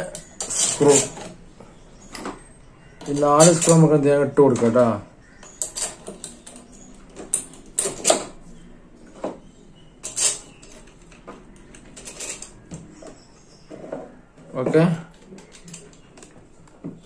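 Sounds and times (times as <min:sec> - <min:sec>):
fan parts clicking and knocking: 0:00.0 - 0:01.5, 0:02.1 - 0:08.4, 0:09.1 - 0:17.0.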